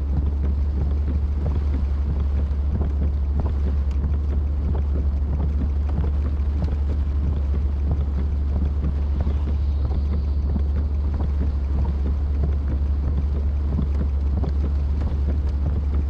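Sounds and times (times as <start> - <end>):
rain on a car roof: 0.0 - 16.0.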